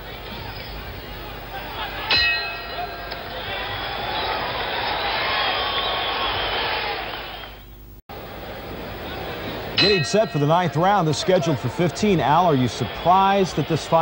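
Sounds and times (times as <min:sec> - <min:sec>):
arena crowd noise: 0:00.0 - 0:14.0
boxing ring bell: 0:02.1 - 0:03.2, 0:09.8 - 0:11.0.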